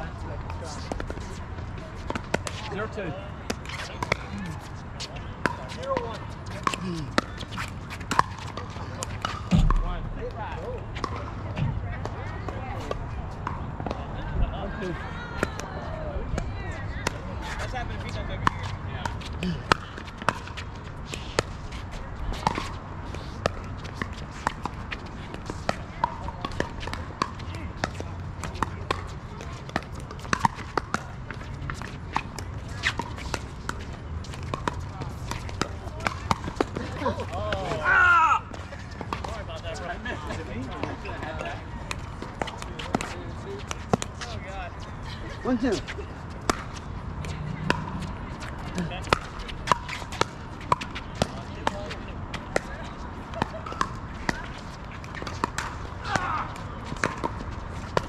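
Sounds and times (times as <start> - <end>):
low thump: 9.5 - 10.3.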